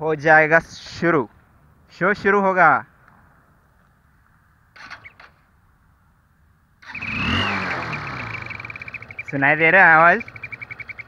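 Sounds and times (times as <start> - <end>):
motorcycle engine idling: 6.8 - 11.0.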